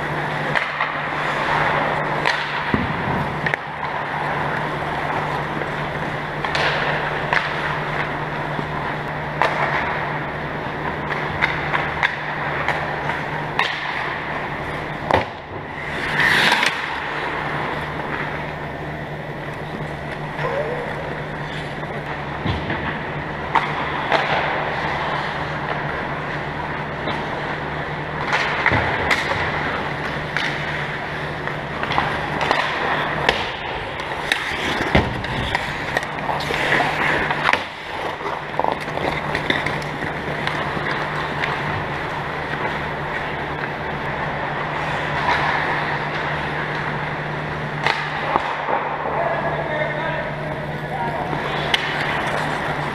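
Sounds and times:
skates scraping on ice: 0.0s - 27.6s, 28.2s - 46.9s, 47.8s - 52.9s
hockey sticks and puck clacking: 0.0s - 52.9s
low rink hum: 0.0s - 52.9s.

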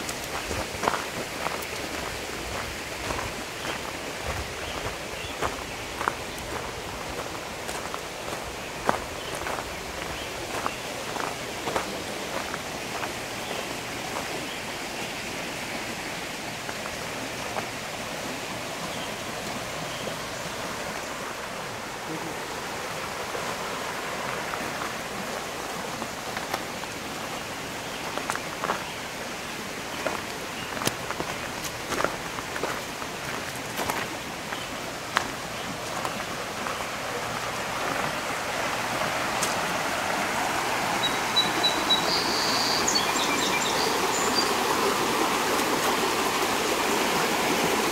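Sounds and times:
footsteps crunching on gravel: 0.0s - 14.4s, 28.0s - 29.0s, 30.0s - 38.1s
steady rushing hiss: 0.0s - 47.9s.

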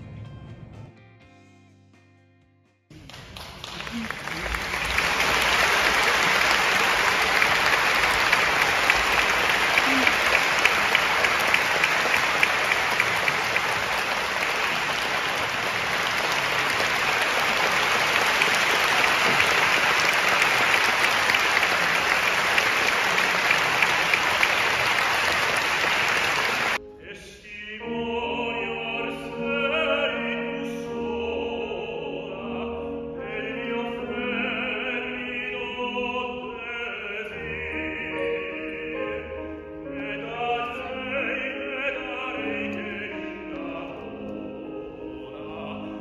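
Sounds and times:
audience applauding: 2.9s - 26.8s.

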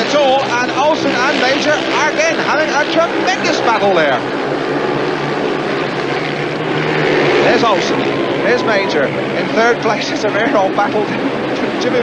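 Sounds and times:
motorcycles racing at full throttle: 0.0s - 12.0s.

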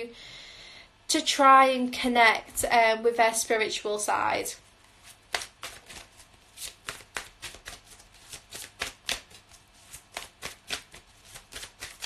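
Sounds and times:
cards being shuffled: 4.8s - 12.0s.

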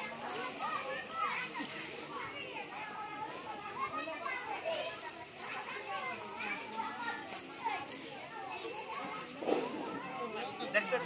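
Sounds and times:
women and children chattering: 0.0s - 11.0s.

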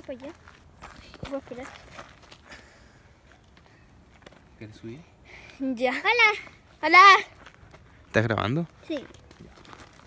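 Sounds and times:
footsteps on leafy dirt path: 0.0s - 4.6s, 6.3s - 10.0s.

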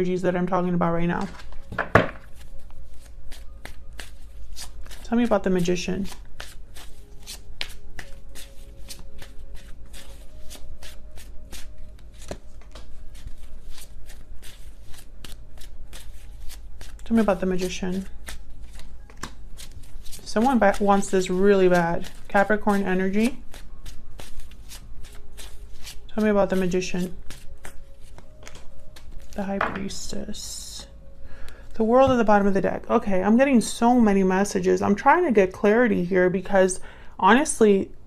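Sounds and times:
cards being shuffled: 1.2s - 30.0s.

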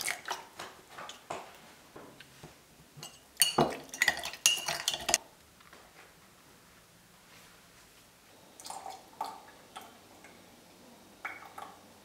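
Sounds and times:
metal spoon clinking in ceramic mug: 3.0s - 5.2s.

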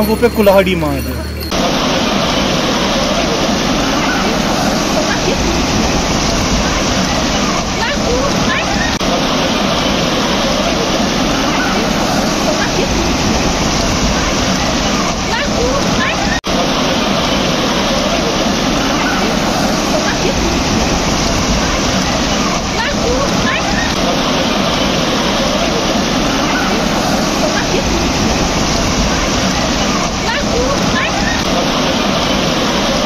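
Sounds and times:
faint voices: 0.0s - 33.0s
stream rushing over rocks: 0.0s - 33.0s.

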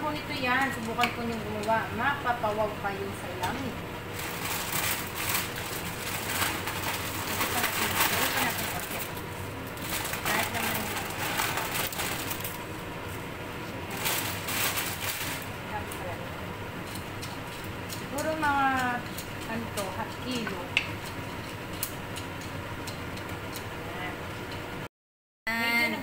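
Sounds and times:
plastic bag crinkling: 4.2s - 9.1s, 9.8s - 12.6s, 13.9s - 15.5s.

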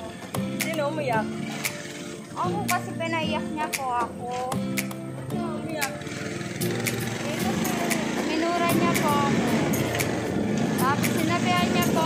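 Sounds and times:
people talking: 0.0s - 1.3s, 2.4s - 4.6s, 5.3s - 6.1s, 7.2s - 10.0s, 10.8s - 12.0s
road noise: 0.0s - 12.0s
motorcycle engine running: 5.2s - 12.0s.

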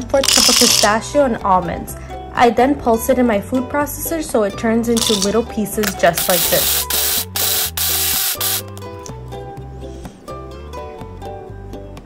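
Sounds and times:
electric food chopper pulsing: 6.2s - 8.7s.

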